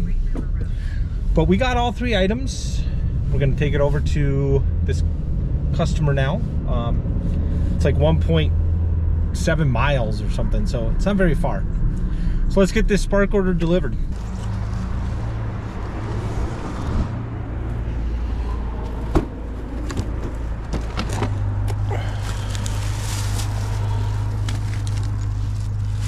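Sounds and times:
car road noise: 0.0 - 26.0.

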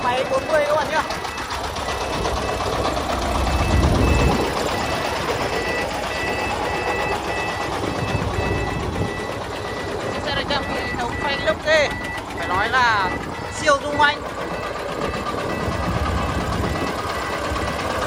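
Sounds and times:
short electronic beeps: 0.0 - 17.8
diesel truck engine working hard: 0.0 - 18.0.

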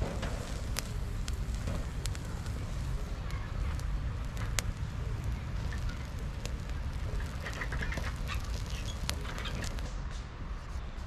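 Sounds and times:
low steady rumble: 0.0 - 10.6
fire popping: 0.0 - 11.0
twig fire crackling: 0.0 - 11.0.

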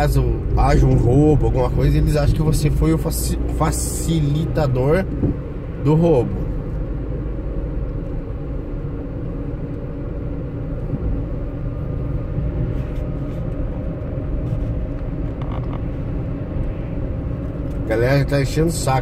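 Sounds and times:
car driving interior rumble: 0.0 - 19.0.

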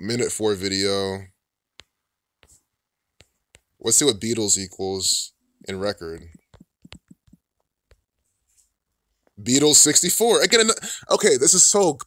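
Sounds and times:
fingertip taps on touchscreen: 6.1 - 8.1.

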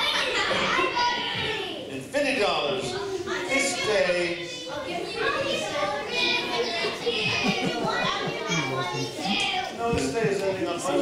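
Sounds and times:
children laughing: 0.0 - 1.4, 4.9 - 11.0
children talking: 0.0 - 11.0.

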